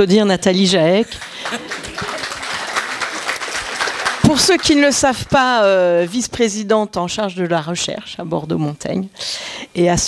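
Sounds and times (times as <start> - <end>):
audience applauding: 1.1 - 5.5.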